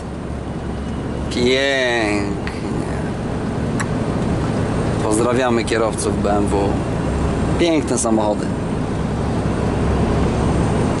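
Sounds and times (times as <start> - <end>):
truck engine drone: 0.0 - 11.0
tyres on road: 0.0 - 11.0.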